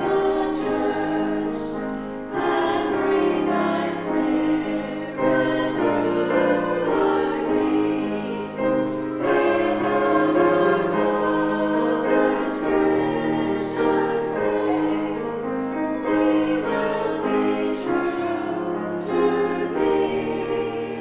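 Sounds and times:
choir singing in parts: 0:00.0 - 0:21.0
grand piano: 0:00.0 - 0:21.0.

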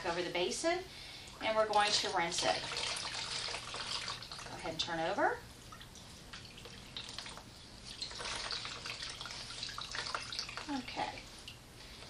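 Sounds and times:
water trickling into basin: 0:01.2 - 0:05.0, 0:05.7 - 0:11.7.

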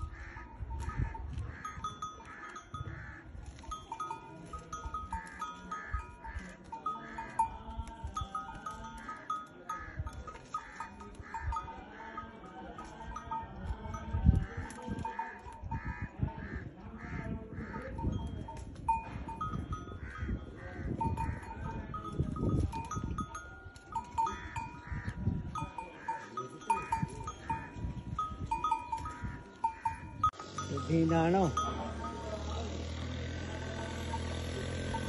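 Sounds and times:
camel tearing at twigs: 0:00.2 - 0:11.4, 0:12.8 - 0:15.8, 0:21.4 - 0:30.1.

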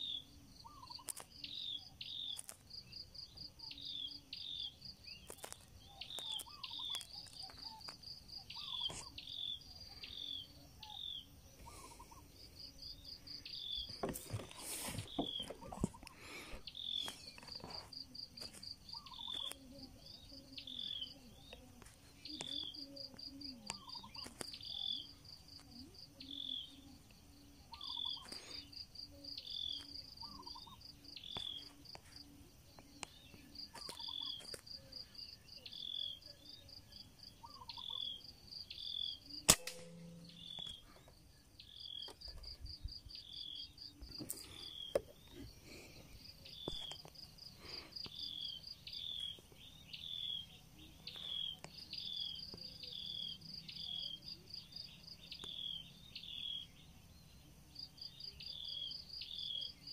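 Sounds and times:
insects trilling and chirping: 0:00.0 - 0:59.9
air rifle firing crack: 0:39.5 - 0:40.1.

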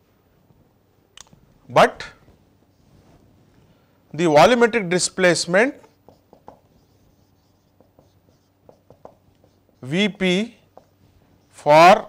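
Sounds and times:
man speaking: 0:04.2 - 0:05.9, 0:09.8 - 0:10.6, 0:11.6 - 0:12.0
marker writing on whiteboard: 0:04.4 - 0:12.0.

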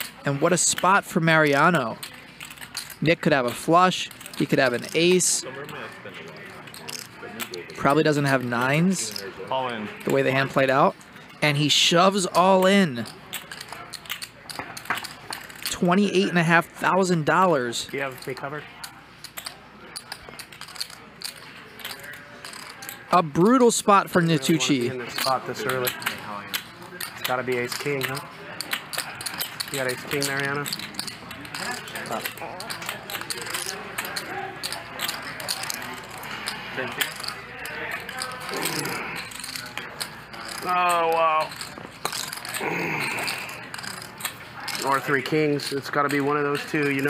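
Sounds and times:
poker chips clicking: 0:00.0 - 0:09.3, 0:09.9 - 0:47.0.

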